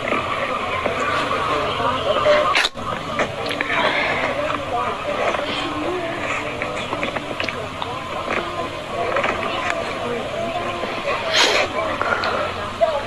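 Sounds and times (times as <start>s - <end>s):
indistinct voice: 0.0s - 13.0s
steady background noise: 0.0s - 13.0s.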